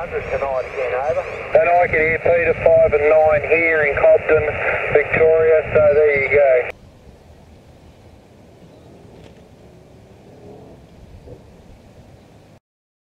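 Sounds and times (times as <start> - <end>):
man's voice over radio speaker: 0.0 - 6.7
faint steady hiss: 0.0 - 10.1.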